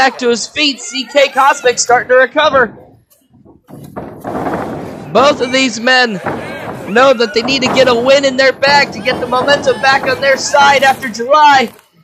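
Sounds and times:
small crowd noise: 0.0 - 12.0
knock: 2.5 - 11.2.

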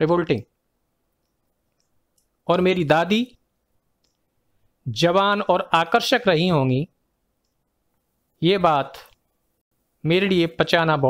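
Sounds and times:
man speaking: 0.0 - 0.5, 2.5 - 3.4, 4.9 - 6.9, 8.4 - 9.1, 10.0 - 11.0.

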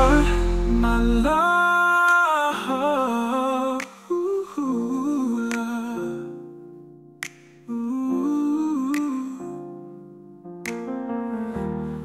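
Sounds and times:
soft backing music: 0.0 - 3.3
hummed vocal melody: 0.0 - 6.2
finger snap: 3.8 - 4.2, 5.5 - 6.0, 7.2 - 7.7, 8.9 - 9.4, 10.6 - 11.0.

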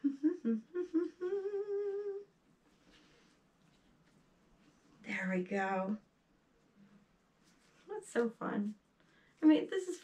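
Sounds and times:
woman humming: 0.0 - 2.3.

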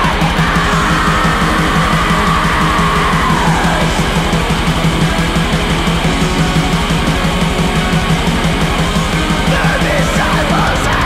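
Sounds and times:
heavy metal music: 0.0 - 11.0.

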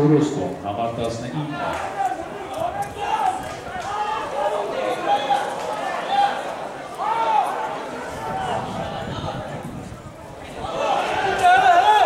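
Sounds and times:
voices calling out: 1.3 - 12.0.

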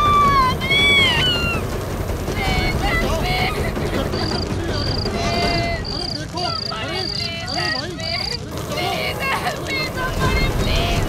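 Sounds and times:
wavering wailing tones: 0.0 - 4.3
low rumble: 0.0 - 7.1, 8.4 - 11.0
crickets chirping: 2.4 - 11.0.

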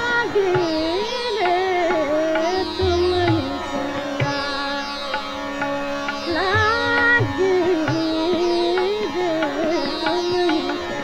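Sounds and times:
low tabla strokes: 0.0 - 11.0.

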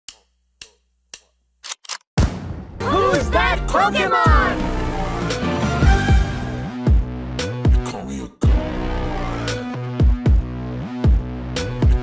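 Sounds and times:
sharp clicks: 0.1 - 2.1.

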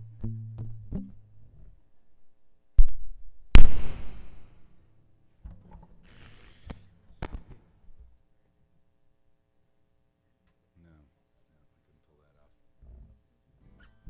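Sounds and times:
acoustic guitar notes plucked: 0.0 - 1.6
guitar string noises and clicks: 0.0 - 1.7, 5.4 - 6.0.

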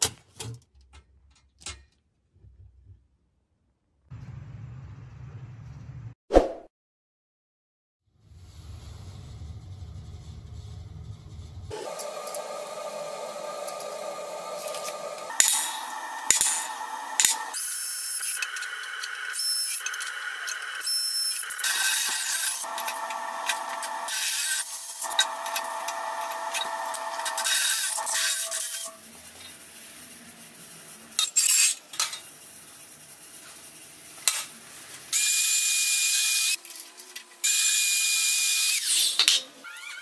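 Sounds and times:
power drill boring into metal: 11.7 - 29.0.

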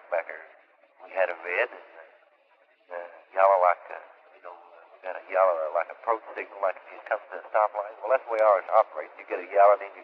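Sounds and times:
man talking over telephone line: 0.0 - 0.4, 1.0 - 2.0, 2.9 - 10.0.

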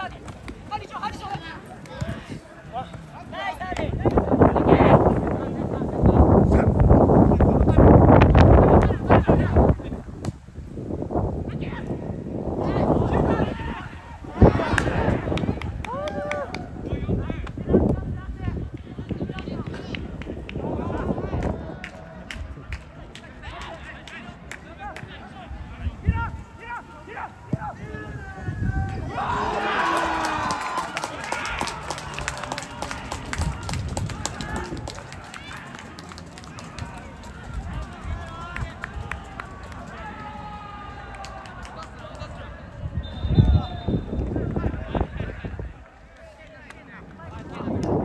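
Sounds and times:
players shouting: 12.7 - 16.9, 26.2 - 42.8.

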